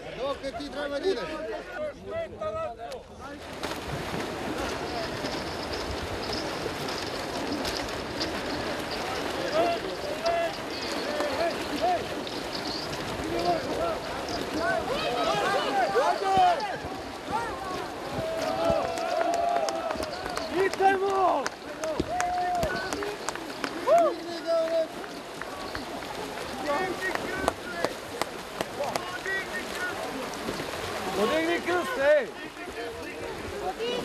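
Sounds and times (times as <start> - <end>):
swimmers splashing in water: 3.3 - 34.0
crowd shouting: 14.6 - 21.2.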